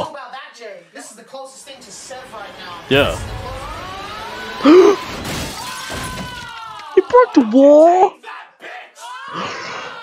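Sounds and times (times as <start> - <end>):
wooden chair smashing: 5.1 - 6.6.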